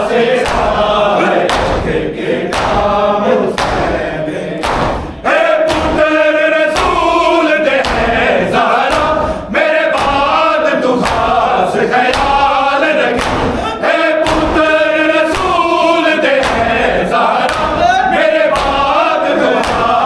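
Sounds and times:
men chanting in unison: 0.0 - 20.0
hand slaps on chests: 0.4 - 2.9, 3.5 - 4.0, 4.6 - 9.3, 9.9 - 13.6, 14.2 - 20.0.

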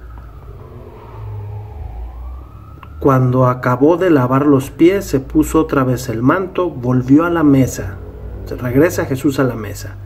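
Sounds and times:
distant siren wailing: 0.0 - 10.0
vehicle rumble: 0.0 - 10.0.

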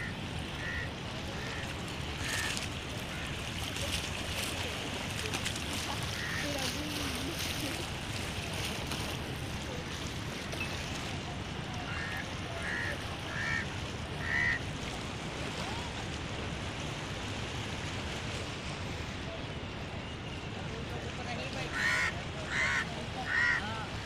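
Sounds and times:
sea water: 0.0 - 24.0
wind: 0.0 - 24.0.

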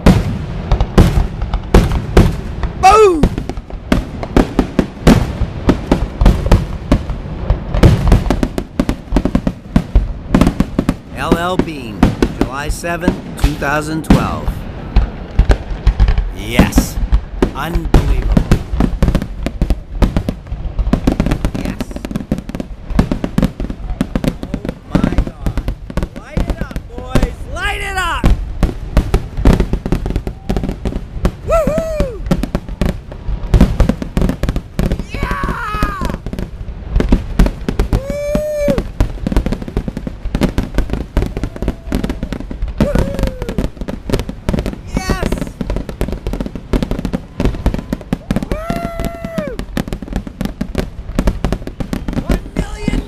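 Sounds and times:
fireworks bursting: 0.0 - 53.0
spectators calling out: 35.0 - 36.2, 41.2 - 43.7.

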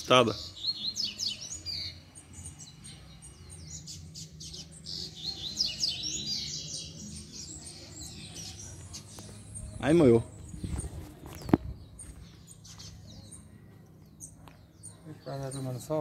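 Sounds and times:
bird singing high chirps: 0.0 - 16.0.

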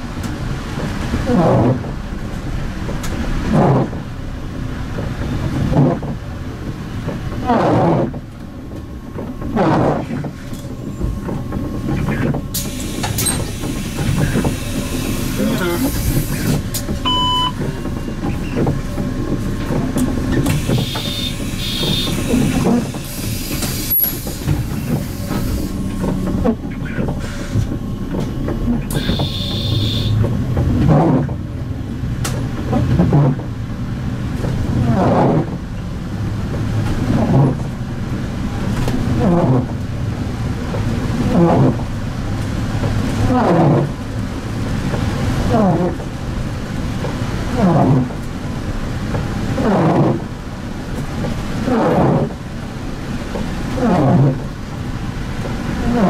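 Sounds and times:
bus engine idling and pulling away: 0.0 - 53.8
short electronic beep: 17.0 - 17.6, 29.0 - 30.1.

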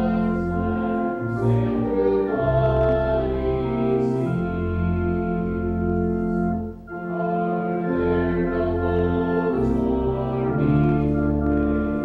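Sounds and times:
organ holding a chord: 0.0 - 12.0.

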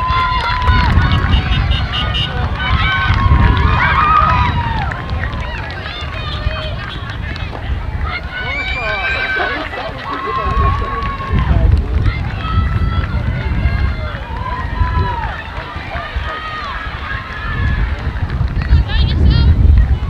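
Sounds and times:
people shouting and calling out: 0.0 - 20.0
wind on microphone: 0.0 - 20.0.

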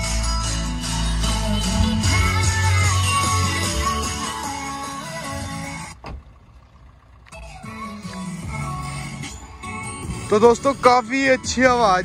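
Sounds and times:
song over car speakers: 0.0 - 6.0, 7.2 - 12.0.

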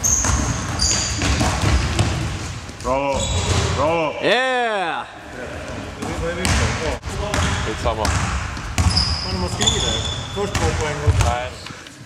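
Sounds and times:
basketball bouncing on floor: 0.0 - 2.9, 6.0 - 11.4
players' voices echoing: 2.7 - 11.9.

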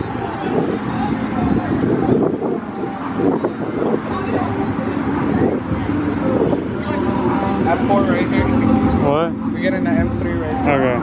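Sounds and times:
car engines idling: 0.0 - 11.0
people talking indistinctly: 0.0 - 11.0.

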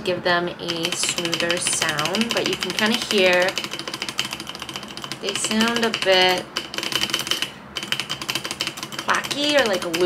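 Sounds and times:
mechanical keyboard typing: 0.6 - 10.0.

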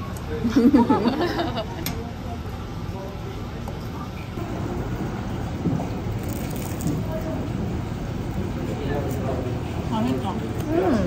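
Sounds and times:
faint conversation: 6.8 - 11.0.

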